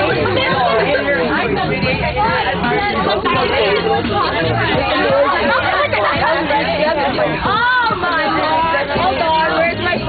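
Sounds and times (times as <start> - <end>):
teenagers chattering: 0.0 - 10.0.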